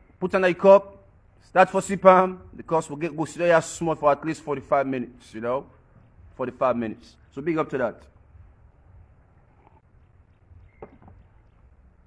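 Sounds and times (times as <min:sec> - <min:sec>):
wind rumble on microphone: 0:08.2 - 0:12.0
soft knock: 0:10.8 - 0:11.3.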